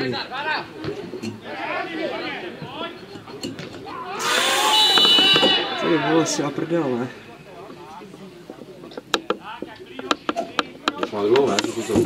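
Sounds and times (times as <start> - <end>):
players shouting: 0.2 - 7.6
referee's whistle: 4.2 - 5.9.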